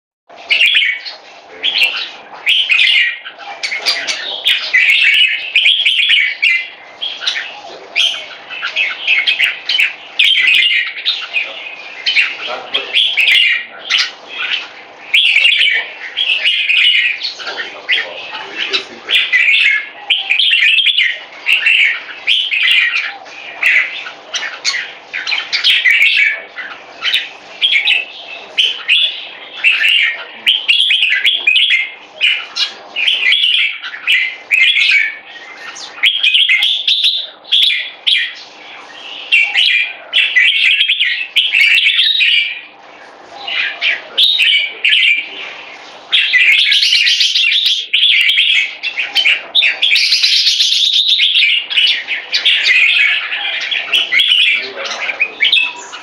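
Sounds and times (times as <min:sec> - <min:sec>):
bulbul chirping song: 0:00.3 - 0:56.0.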